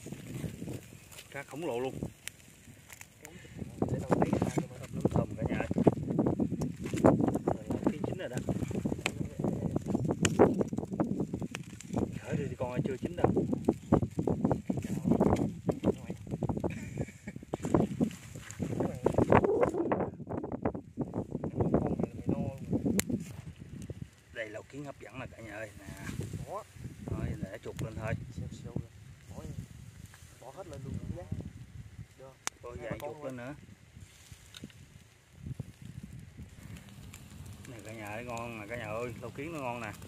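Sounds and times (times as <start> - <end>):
people talking: 1.3 - 2.1, 3.2 - 5.8, 7.4 - 9.9, 12.2 - 13.4, 21.5 - 22.6, 24.4 - 29.6, 32.2 - 33.6, 37.7 - 40.0.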